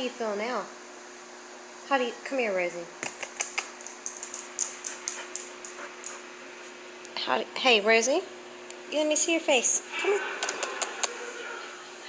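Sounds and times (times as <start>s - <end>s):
dog claws clicking on tiled floor: 3.0s - 6.2s.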